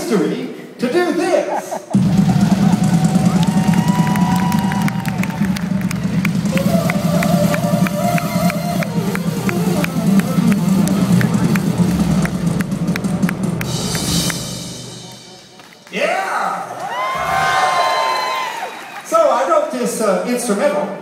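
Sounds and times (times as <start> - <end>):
crowd cheering and clapping: 1.9 - 19.7
held synthesizer notes: 6.1 - 16.3.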